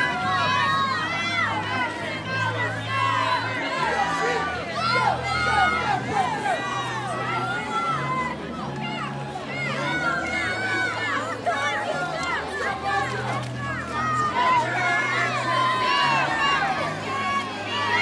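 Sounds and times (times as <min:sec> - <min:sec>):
low bass music: 0:00.0 - 0:18.0
spectators shouting and cheering: 0:00.0 - 0:18.0.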